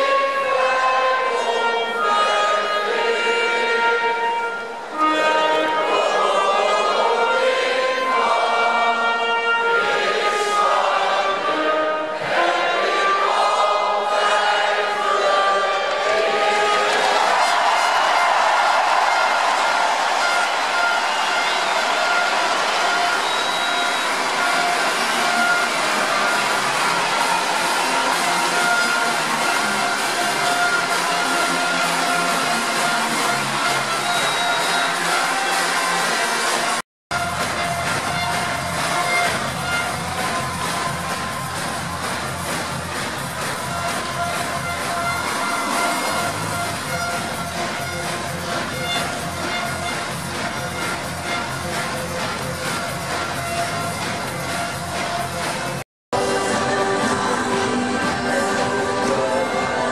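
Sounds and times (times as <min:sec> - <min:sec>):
music over stadium loudspeakers: 0:00.0 - 0:59.9
crowd cheering: 0:09.8 - 0:59.9.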